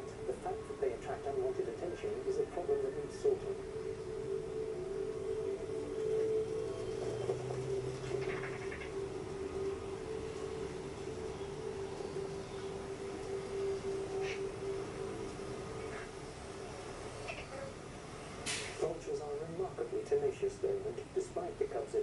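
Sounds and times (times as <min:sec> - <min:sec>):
wavering held tone: 0:01.8 - 0:17.6.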